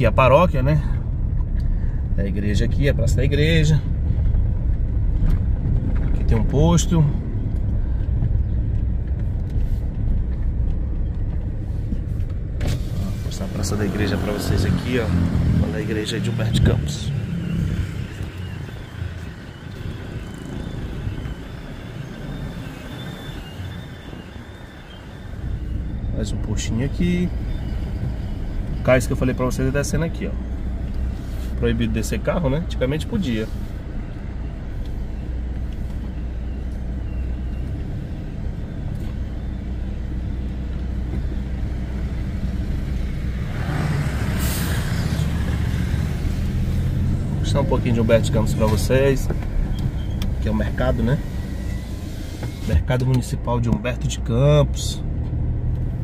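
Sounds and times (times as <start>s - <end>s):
car engine and tyre rumble: 0.0s - 56.0s.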